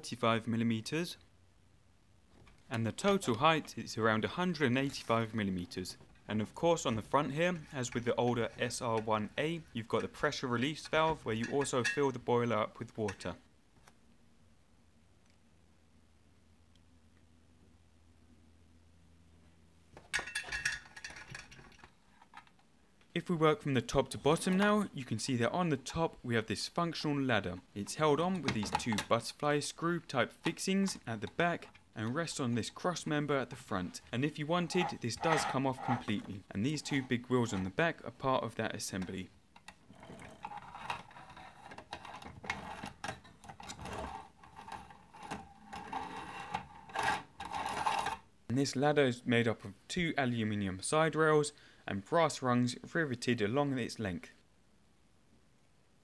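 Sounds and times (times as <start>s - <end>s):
faint steady hum: 0.0s - 56.0s
metal toy ladder clicking and rattling: 9.9s - 12.2s, 20.1s - 22.0s, 34.6s - 37.7s.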